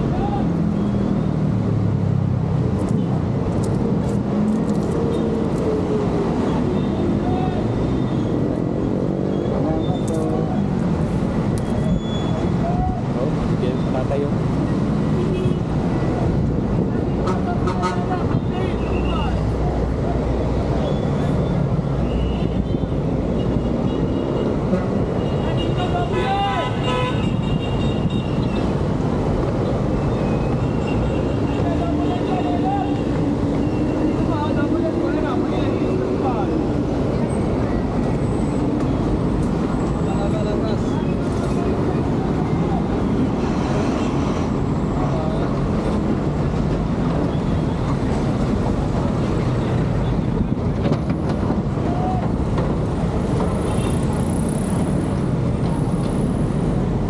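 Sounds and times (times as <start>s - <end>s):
vehicle traffic: 0.0s - 57.0s
voices chattering: 29.6s - 43.6s.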